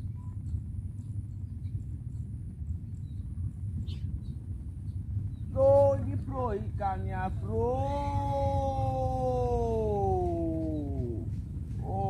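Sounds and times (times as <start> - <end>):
steady low rumble: 0.0 - 12.0
man's long drawn-out call: 7.6 - 12.0.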